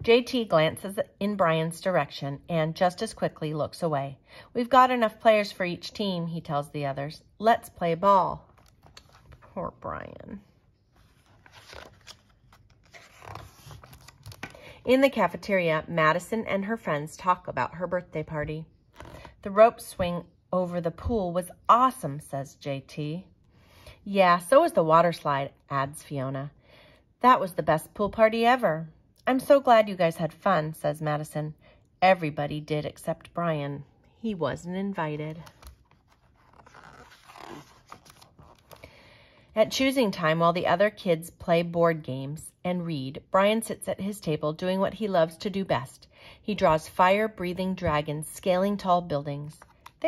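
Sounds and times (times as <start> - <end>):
paper rustling: 10.9 - 14.6, 35.3 - 38.8
page turning swish: 11.0 - 14.5, 35.4 - 38.8.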